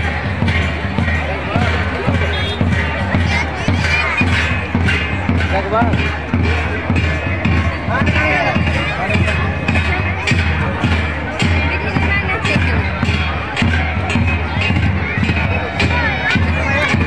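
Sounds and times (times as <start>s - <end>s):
crowd chatter: 0.0s - 17.0s
large drum beating: 0.0s - 17.0s.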